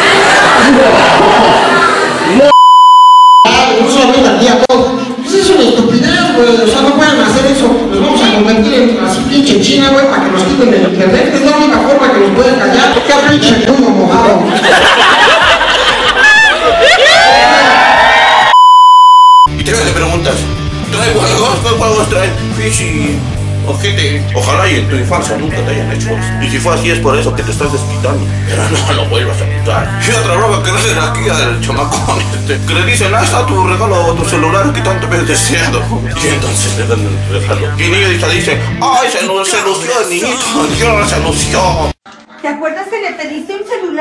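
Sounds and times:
crowd whooping: 0:00.0 - 0:02.5, 0:15.2 - 0:18.6
electronic censor beep: 0:02.5 - 0:03.5, 0:18.5 - 0:19.5
high-pitched bleep tone: 0:02.5 - 0:03.6, 0:18.5 - 0:19.5
people talking: 0:03.4 - 0:14.6, 0:19.6 - 0:44.0
background guitar music: 0:19.5 - 0:38.9.

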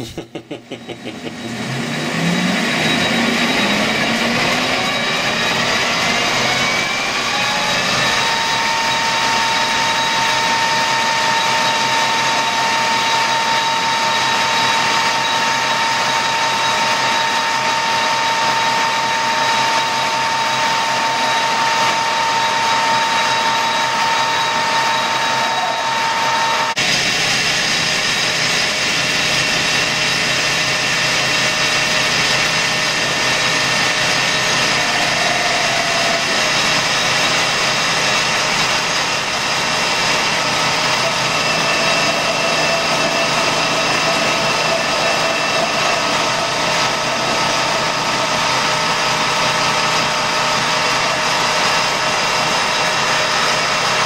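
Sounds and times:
lathe machine whine: 0:00.0 - 0:54.0.

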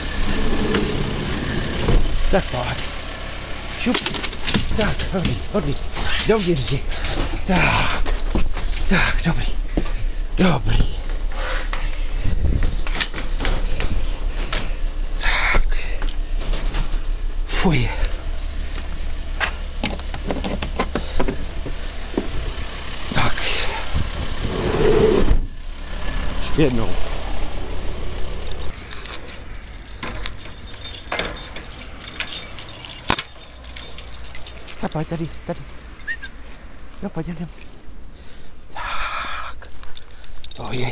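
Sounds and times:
keys jangling: 0:02.4 - 0:09.7, 0:28.6 - 0:38.0, 0:39.6 - 0:40.9
handling clicks and knocks: 0:02.7 - 0:08.7, 0:19.4 - 0:22.3, 0:28.7 - 0:36.9
car engine idling: 0:13.2 - 0:24.7
metallic clicks and clanks: 0:28.6 - 0:36.4.

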